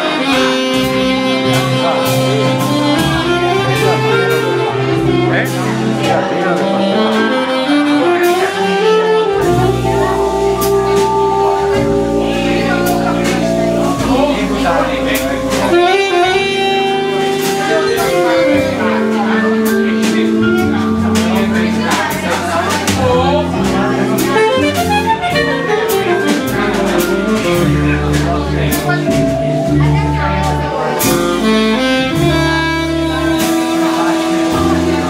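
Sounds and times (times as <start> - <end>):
double bass: 0.0 - 35.0
drums: 0.0 - 35.0
saxophone melody: 0.0 - 35.0.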